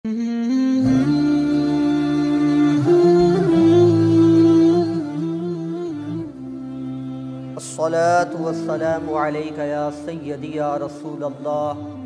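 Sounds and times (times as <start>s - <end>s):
voices humming held notes: 0.1s - 12.0s.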